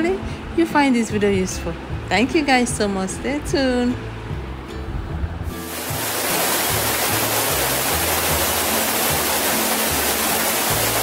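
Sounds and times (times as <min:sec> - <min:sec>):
background music with low bass: 0:00.0 - 0:11.0
waterfall rushing: 0:05.5 - 0:11.0.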